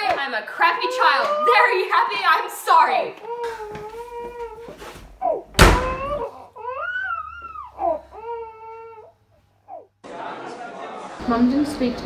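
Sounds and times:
door banging shut: 5.5 - 6.3.

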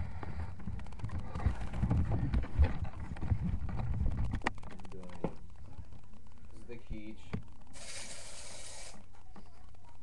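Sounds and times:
knocks and thumps: 0.2 - 5.4.

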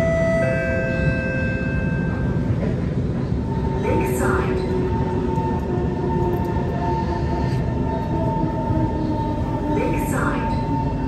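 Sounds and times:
metro train rumble: 0.0 - 11.0.

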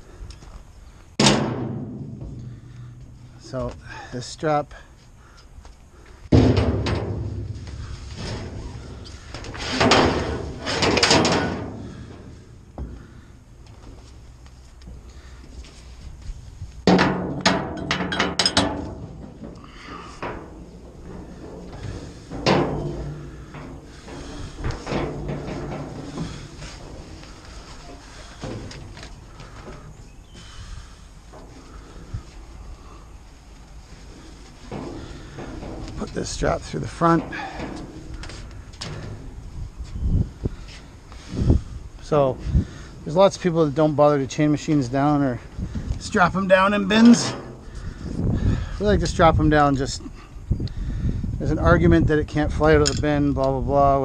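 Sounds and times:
metal hooks clattering on steel: 17.7 - 18.9.

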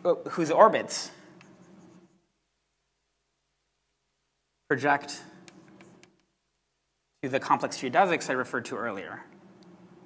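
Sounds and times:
scratching of writing on a board: 1.3 - 2.2, 5.4 - 6.2.

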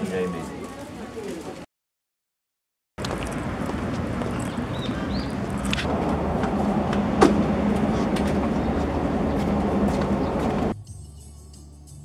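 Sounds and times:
constant low hum: 3.0 - 10.8
motor vehicle rumble: 3.0 - 10.8.

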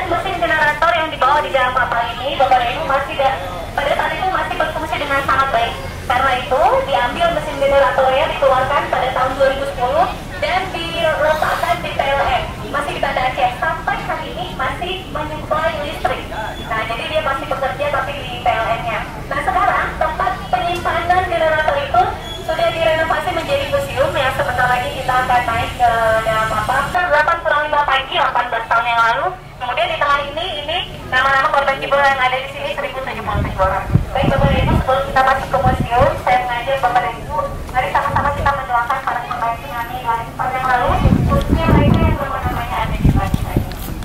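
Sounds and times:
woman talking through loudspeaker: 0.0 - 44.0.

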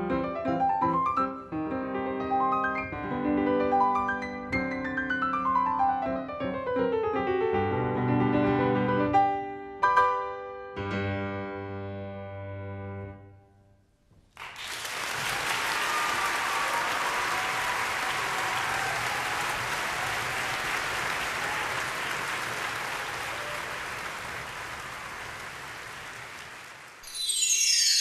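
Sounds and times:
audience applauding: 14.3 - 27.4.

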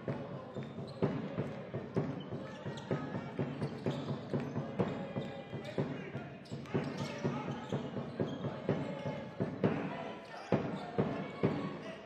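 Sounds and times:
arena noise: 0.0 - 12.0.

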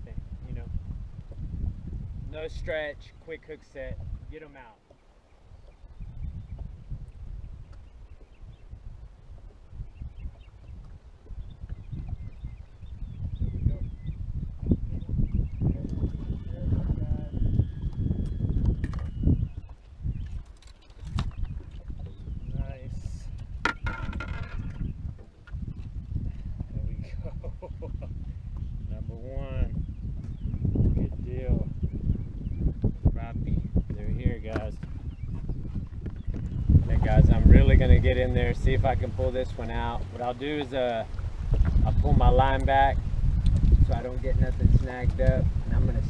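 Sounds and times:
wind buffeting the microphone: 0.0 - 46.0
clicks and knocks from rod handling: 23.6 - 25.6.

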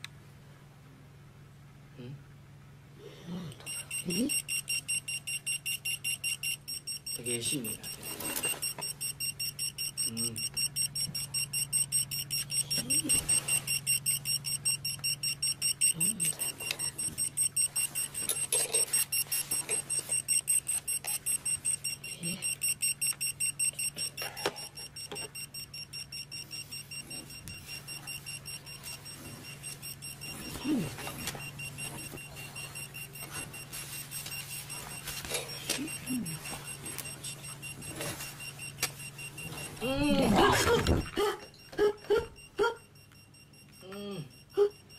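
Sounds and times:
low steady hum: 0.0 - 44.9
digital alarm clock beeping: 3.7 - 44.9.

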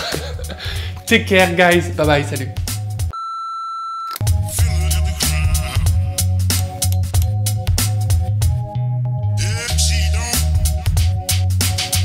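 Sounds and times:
electronic music with heavy bass: 4.2 - 12.0.

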